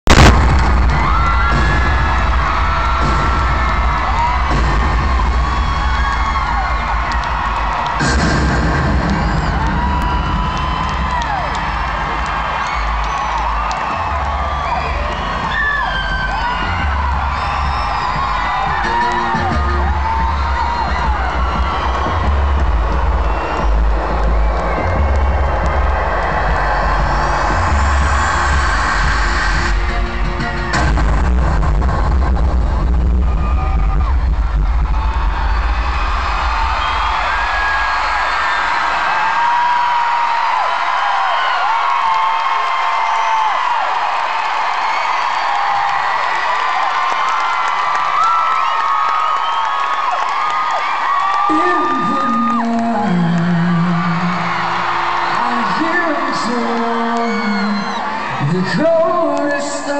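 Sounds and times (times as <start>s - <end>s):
pulsing bass thud: 0.1s - 9.5s
sharp loud hit: 0.1s - 11.0s
bass-heavy music: 0.1s - 38.2s, 51.5s - 59.9s
crowd screaming and cheering: 0.1s - 59.9s.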